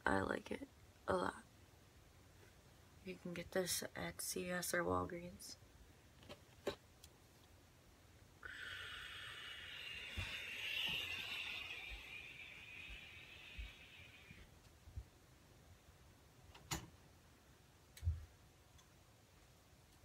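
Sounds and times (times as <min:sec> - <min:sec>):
steady hiss: 0:07.2 - 0:17.9.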